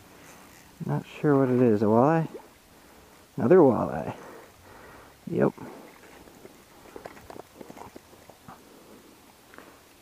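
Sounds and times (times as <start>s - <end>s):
fish handling taps and rustles: 5.5s - 8.6s.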